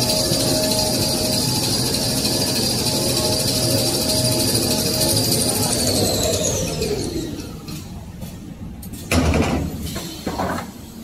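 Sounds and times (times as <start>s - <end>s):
paper machine running: 0.0s - 7.0s.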